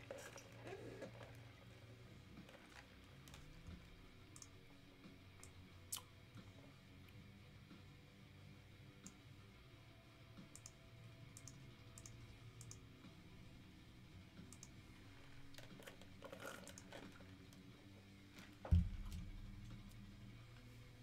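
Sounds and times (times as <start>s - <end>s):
keyboard and mouse clicking: 10.5s - 10.8s, 11.4s - 12.8s, 14.5s - 14.8s.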